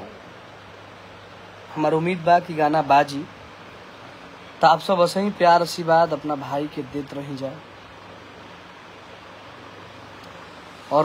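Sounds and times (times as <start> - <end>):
steady background hiss: 0.0 - 11.0
man speaking: 1.7 - 3.4, 4.6 - 7.7.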